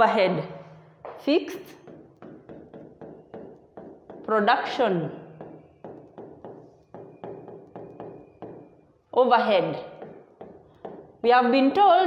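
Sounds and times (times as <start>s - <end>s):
stylus tapping on screen: 1.0s - 9.0s, 9.7s - 11.3s.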